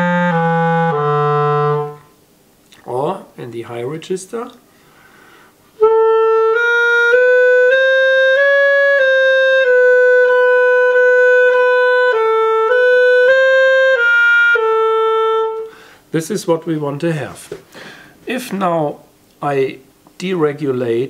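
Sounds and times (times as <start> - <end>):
clarinet playing legato: 0.0 - 2.2, 5.8 - 15.9.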